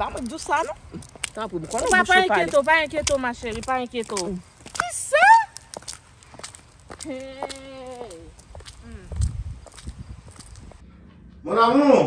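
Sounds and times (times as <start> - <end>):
woman whooping: 4.8 - 5.6.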